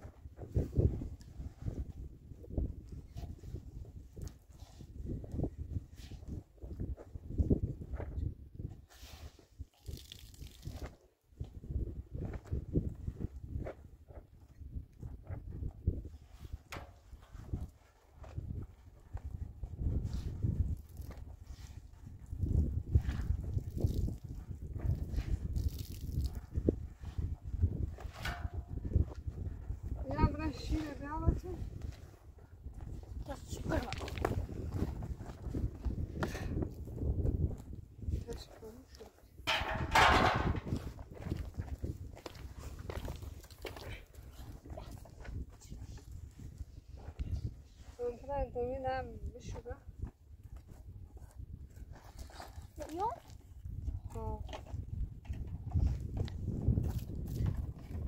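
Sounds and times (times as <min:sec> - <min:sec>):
wind buffeting microphone: 0:00.0 - 0:09.6, 0:10.5 - 0:58.0.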